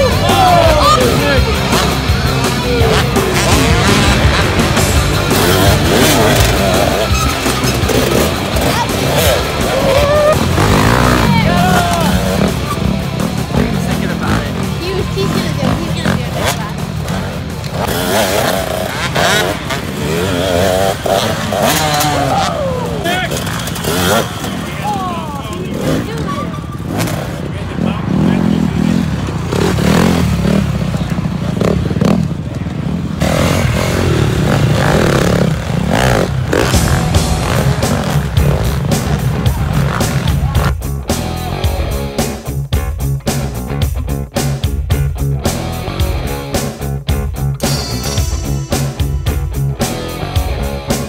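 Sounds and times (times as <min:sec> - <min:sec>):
voices: 0:00.0 - 0:42.4
dirt bike engines revving: 0:00.0 - 0:51.0.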